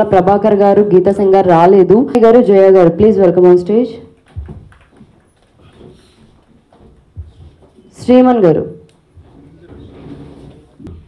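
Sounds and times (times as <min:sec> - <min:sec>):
soft low thumps: 0:04.3 - 0:08.3.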